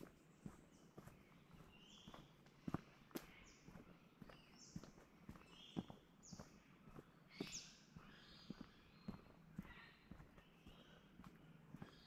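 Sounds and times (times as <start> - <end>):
footsteps on dirt and leaves: 0.0 - 12.0.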